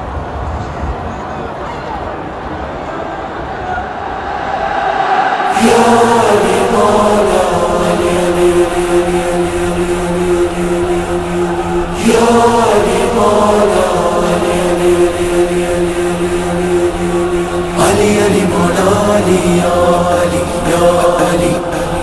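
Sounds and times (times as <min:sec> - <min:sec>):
crowd of men chanting: 0:03.8 - 0:22.0.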